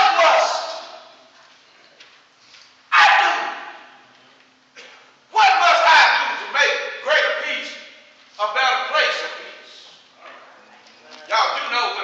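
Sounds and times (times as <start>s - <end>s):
man shouting in a hall: 0.0s - 1.3s, 2.9s - 4.0s, 4.8s - 9.8s, 11.3s - 12.0s
echo in a large hall: 0.0s - 12.0s.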